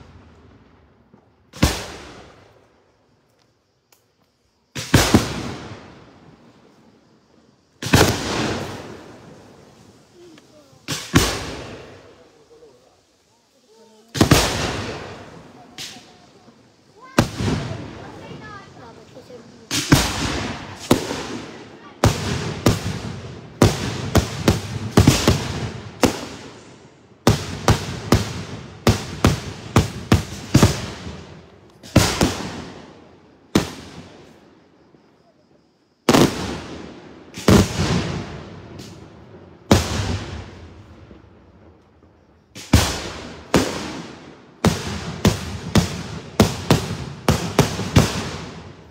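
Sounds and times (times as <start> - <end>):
sharp firework crack: 0.0 - 2.6, 4.7 - 6.3, 7.8 - 12.9, 13.6 - 34.4, 36.0 - 41.2, 42.5 - 48.9
loud firework shell bursts: 10.7 - 12.2.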